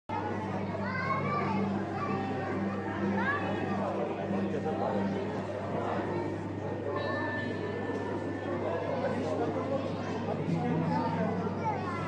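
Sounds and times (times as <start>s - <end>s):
children calling and chattering: 0.1s - 12.0s.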